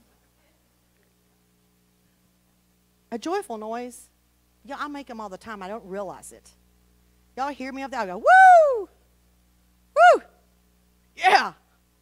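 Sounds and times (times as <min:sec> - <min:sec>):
woman whooping: 0:08.2 - 0:09.0, 0:10.0 - 0:10.4.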